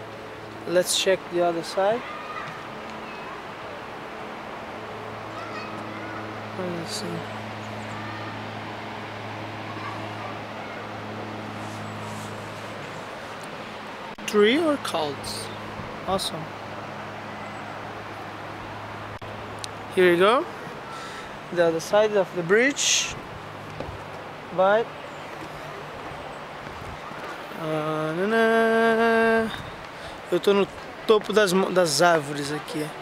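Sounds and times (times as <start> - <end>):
background hiss: 11.4 - 33.0.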